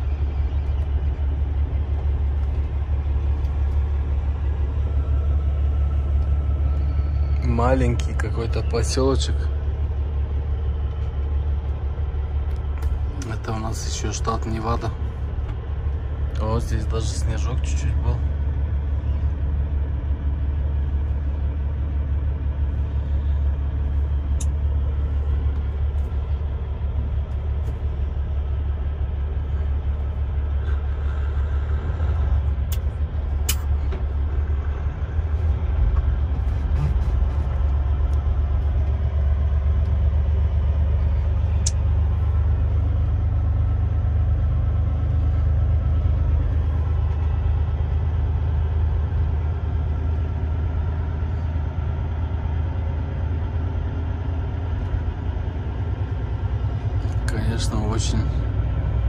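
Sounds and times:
road noise: 0.0 - 59.0
truck engine drone: 0.0 - 59.0.

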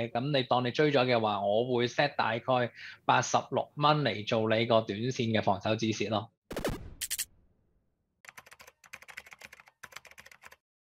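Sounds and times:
rapid keyboard key clicks: 8.2 - 10.6.

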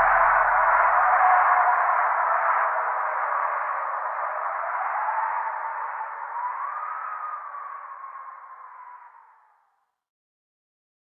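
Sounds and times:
faint wavering tone: 0.0 - 2.7.

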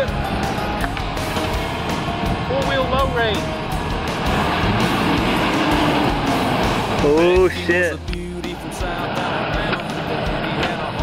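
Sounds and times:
truck engine working hard: 0.0 - 11.0.

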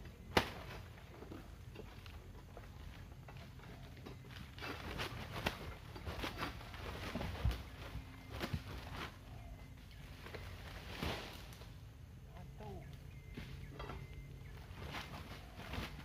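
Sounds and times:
frond rustling: 4.4 - 11.8, 14.5 - 16.0.

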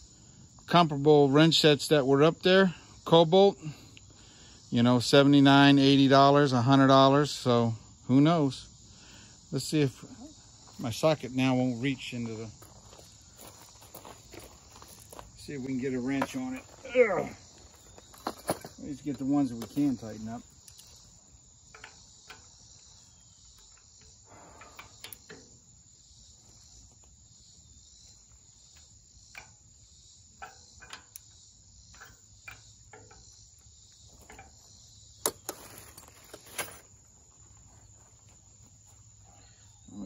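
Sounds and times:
high-pitched insect chorus: 0.0 - 40.0.

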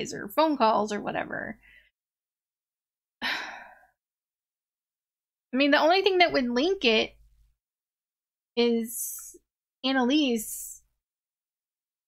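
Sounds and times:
woman sighing: 3.2 - 4.0.

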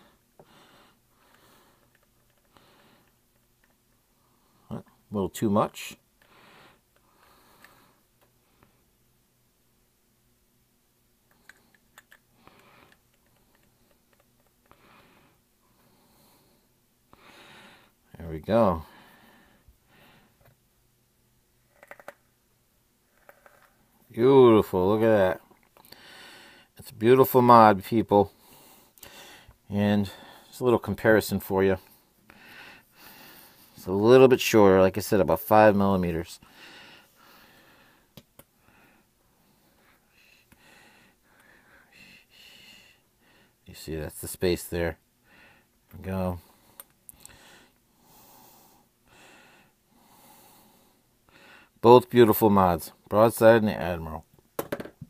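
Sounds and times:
faint breathing: 0.0 - 3.2, 4.1 - 5.1, 6.2 - 8.9, 11.3 - 18.1, 18.7 - 20.6, 25.8 - 26.8, 28.2 - 30.6, 31.8 - 33.9, 36.4 - 43.7, 45.2 - 51.8.

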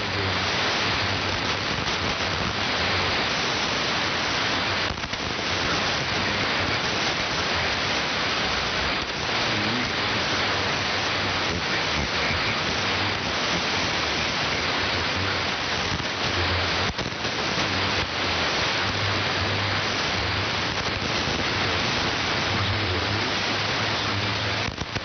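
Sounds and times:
radio static hiss: 0.0 - 25.0.

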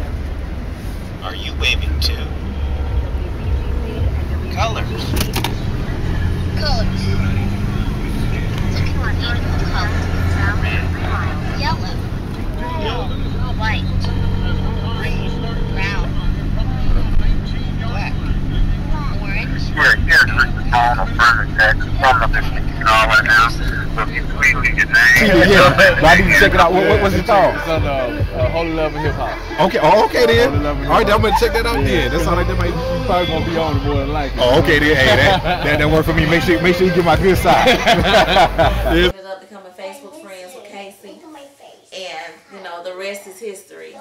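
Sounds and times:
car engine: 0.0 - 39.2
road noise inside car: 0.0 - 39.2
indistinct voices: 0.0 - 44.0.

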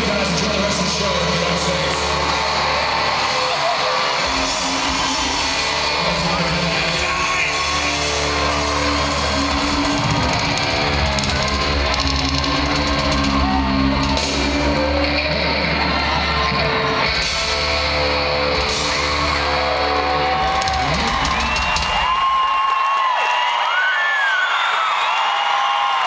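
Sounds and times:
electric guitars: 0.0 - 22.6
live rock band: 0.0 - 22.7.

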